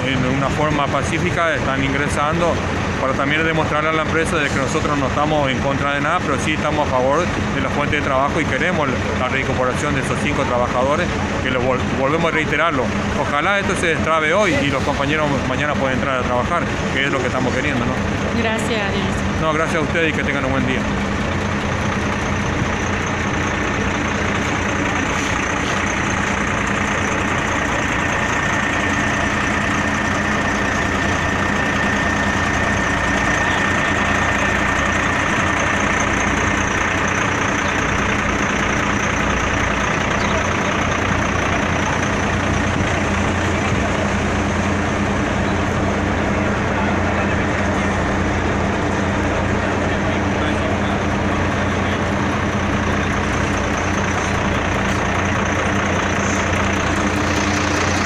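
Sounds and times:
diesel truck engines idling: 0.0 - 58.0.

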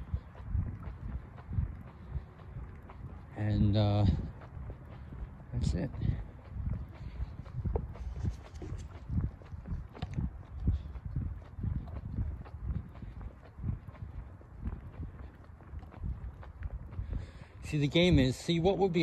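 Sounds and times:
footsteps on asphalt: 0.0 - 19.0.

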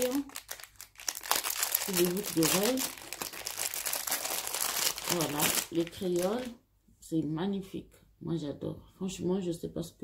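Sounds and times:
plastic wrapping crinkling: 0.0 - 6.6.

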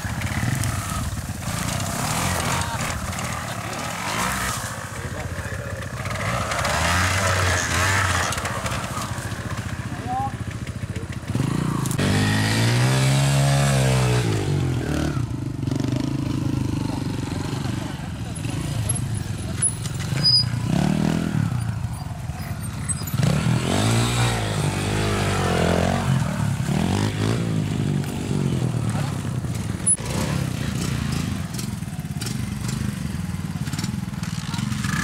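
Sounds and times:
motorcycle engine running unevenly: 0.0 - 35.0.

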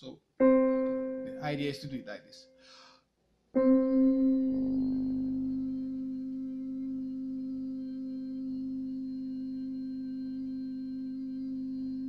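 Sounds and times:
man humming a steady note: 3.6 - 12.0.

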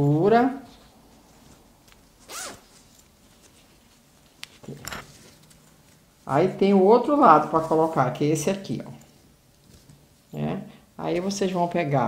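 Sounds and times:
zipper on fabric wallet: 2.2 - 2.7.

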